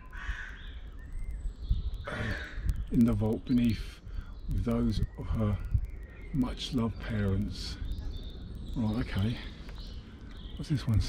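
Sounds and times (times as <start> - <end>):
crow cawing: 0.0 - 0.8, 2.1 - 2.7
man saying uh: 2.1 - 5.7, 6.4 - 7.8, 8.8 - 9.5, 10.6 - 11.0.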